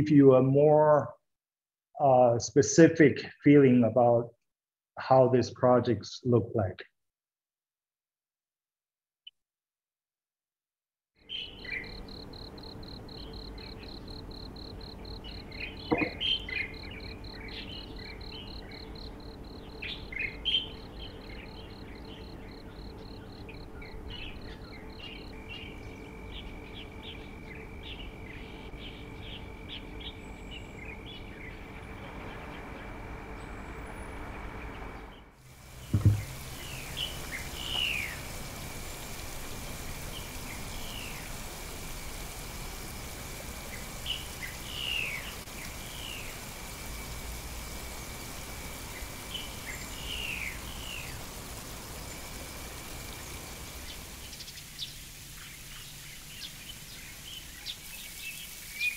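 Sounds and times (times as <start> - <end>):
insect trilling: 11.2 - 31.6, 35.4 - 58.9
birds chirping: 11.3 - 42.2, 43.3 - 47.0, 47.9 - 58.9
low thump: 15.9 - 16.2, 35.9 - 36.3.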